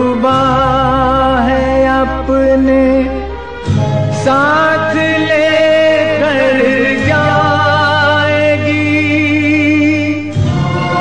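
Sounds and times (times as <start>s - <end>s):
old film song with vibrato: 0.0s - 11.0s.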